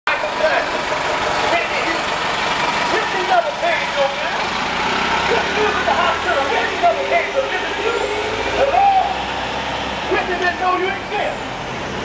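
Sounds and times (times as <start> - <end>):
bus diesel engine pulling away: 0.1 - 12.0
street noise: 0.1 - 12.0
person talking: 5.2 - 8.1.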